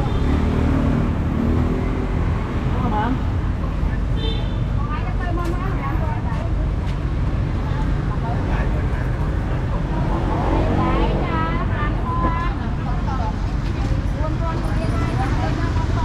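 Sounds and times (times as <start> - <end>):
low rumble of road traffic: 0.0 - 16.0
people talking: 4.8 - 7.0, 7.6 - 16.0.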